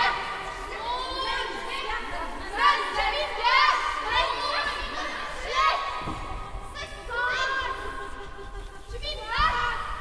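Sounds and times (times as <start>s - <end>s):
girls' choir gliding cries: 0.0s - 10.0s.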